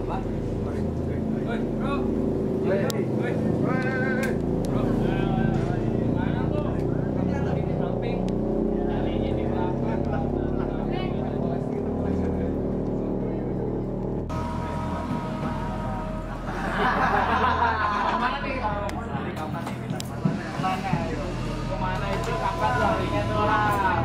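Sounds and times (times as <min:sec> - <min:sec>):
steady low hum: 0:00.0 - 0:24.0
young people chatting: 0:00.0 - 0:24.0.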